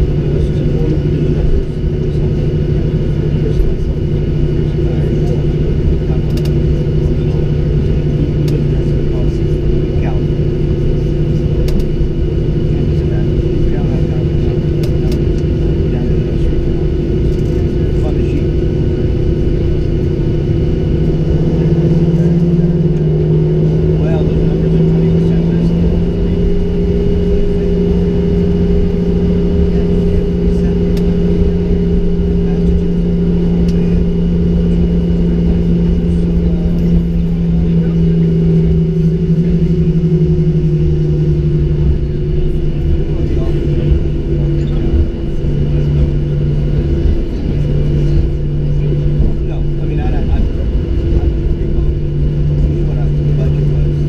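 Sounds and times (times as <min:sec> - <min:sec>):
jet engines droning in cabin: 0:00.0 - 0:54.0.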